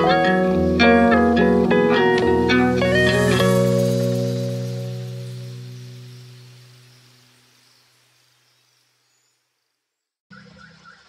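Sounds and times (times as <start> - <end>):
strummed guitar chord: 0.0 - 6.8.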